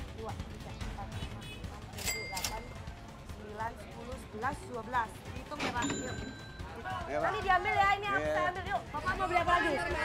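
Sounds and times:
background music: 0:00.0 - 0:10.0
faint shop chatter: 0:00.0 - 0:10.0
metallic ding: 0:05.6 - 0:06.8.

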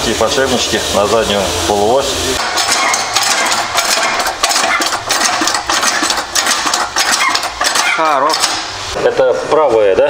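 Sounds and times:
hydraulic press clattering: 0:02.4 - 0:08.9.

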